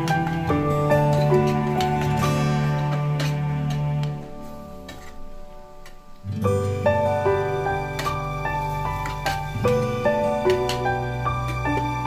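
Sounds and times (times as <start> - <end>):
soft plucked-string music: 0.0 - 12.0.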